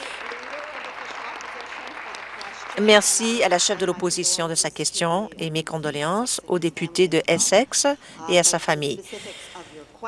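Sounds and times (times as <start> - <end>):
crowd clapping: 0.0 - 4.0.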